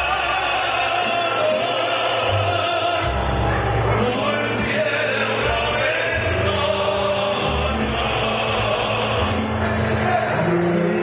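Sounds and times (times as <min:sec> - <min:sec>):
mariachi band playing: 0:00.0 - 0:11.0.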